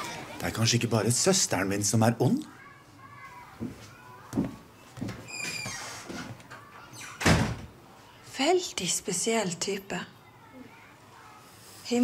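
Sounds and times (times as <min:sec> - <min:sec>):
wooden door slamming: 0:07.0 - 0:07.7.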